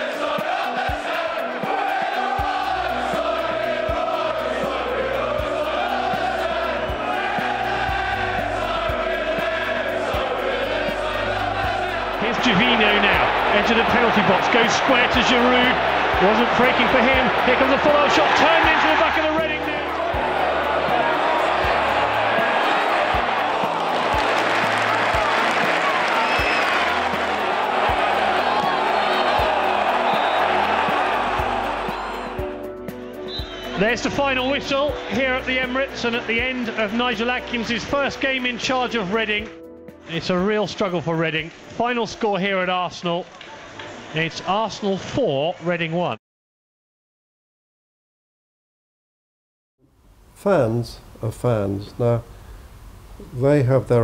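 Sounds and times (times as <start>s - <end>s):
stadium crowd chanting: 0.0s - 32.5s.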